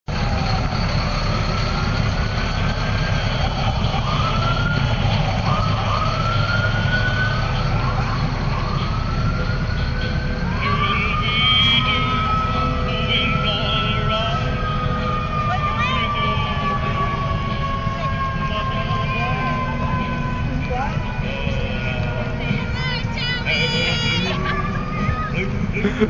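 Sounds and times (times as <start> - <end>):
emergency sirens winding up: 0.1 - 26.0
low engine rumble: 0.1 - 26.0.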